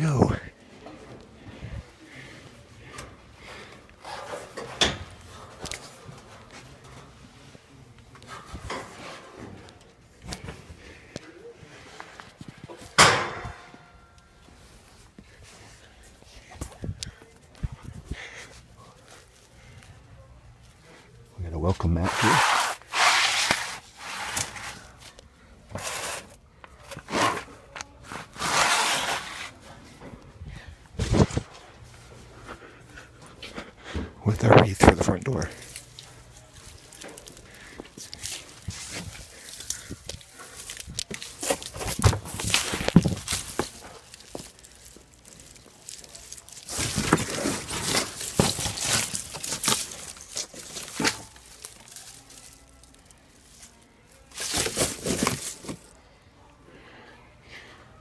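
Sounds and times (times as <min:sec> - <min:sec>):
rustling and shuffling: 0:00.2 - 0:56.0.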